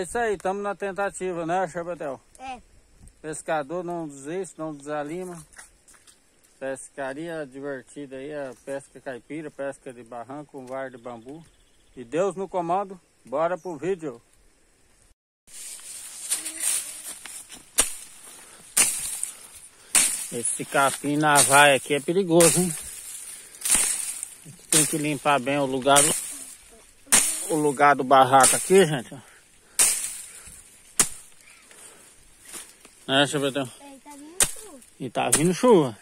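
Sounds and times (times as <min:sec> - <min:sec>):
dry grass rustling underfoot: 0:15.5 - 0:35.1
twigs snapping: 0:15.6 - 0:27.6, 0:29.7 - 0:33.1, 0:34.1 - 0:35.5
man's voice: 0:20.3 - 0:22.9, 0:24.5 - 0:26.2, 0:27.4 - 0:29.2.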